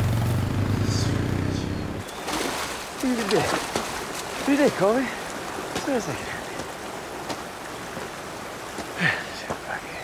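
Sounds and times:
river rushing over rocks: 2.1s - 10.0s.

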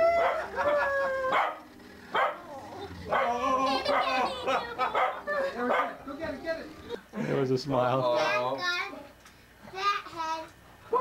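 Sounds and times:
small dog barking: 1.3s - 2.5s, 3.1s - 6.0s.

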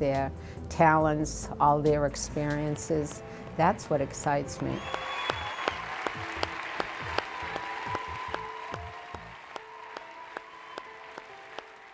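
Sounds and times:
soft sustained background music: 0.0s - 11.9s
audience applauding: 4.8s - 11.9s.

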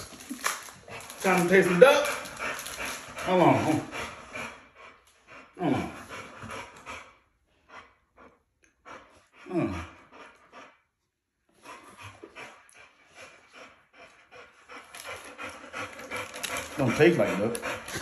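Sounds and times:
dogs panting: 0.0s - 18.0s.

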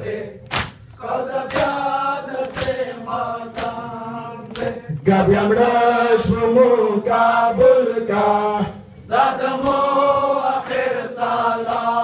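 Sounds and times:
crowd slapping chests: 0.4s - 4.8s, 8.6s - 12.0s
men chanting: 1.0s - 12.0s.

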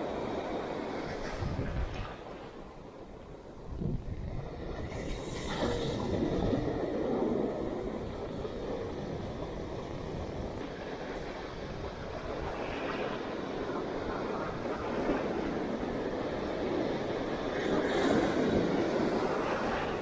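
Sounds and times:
ocean surf breaking: 0.0s - 20.0s.

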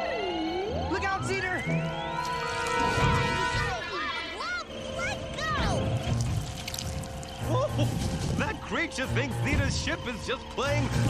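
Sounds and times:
gurgling pouring effect: 6.1s - 7.4s.

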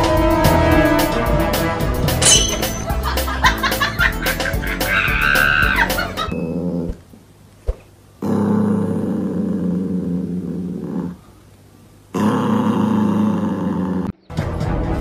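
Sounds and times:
small dog growling: 6.3s - 7.1s, 8.2s - 11.4s, 12.1s - 14.2s.

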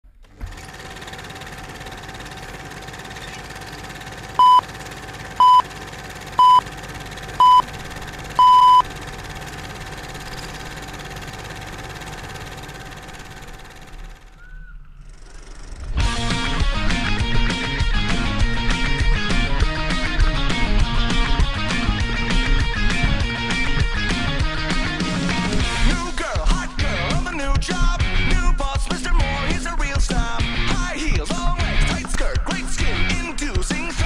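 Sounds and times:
countdown beeps: 4.4s - 4.6s, 5.4s - 5.6s, 6.4s - 6.6s, 7.4s - 7.7s, 8.4s - 8.8s.

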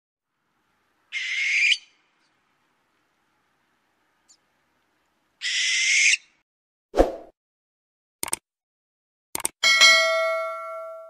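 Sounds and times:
owl call: 1.1s - 2.1s, 5.4s - 6.4s.

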